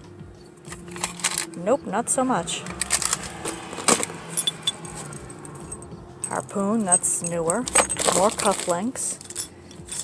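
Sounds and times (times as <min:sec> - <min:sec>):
metal trinkets clinking: 0:00.7 - 0:01.7, 0:02.6 - 0:10.0
plastic bags rustling: 0:07.8 - 0:08.9.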